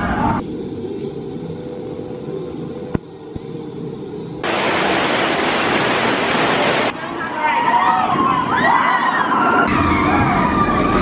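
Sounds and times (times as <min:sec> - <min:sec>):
steady rushing hiss: 0:02.3 - 0:07.0.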